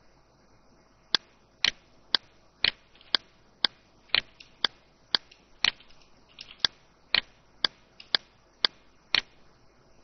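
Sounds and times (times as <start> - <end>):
computer mouse clicking: 1.2 - 9.4.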